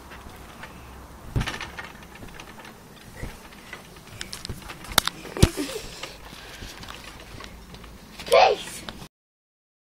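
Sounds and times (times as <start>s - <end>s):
trampoline thumps and rustling: 0.0s - 8.5s.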